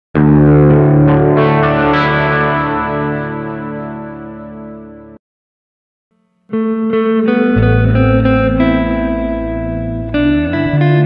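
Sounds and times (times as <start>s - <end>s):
distorted electric guitar chord: 0.2s - 5.2s, 6.1s - 11.0s.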